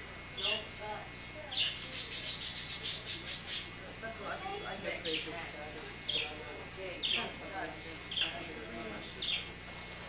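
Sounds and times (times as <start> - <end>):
small bird chirping: 1.5 - 3.8.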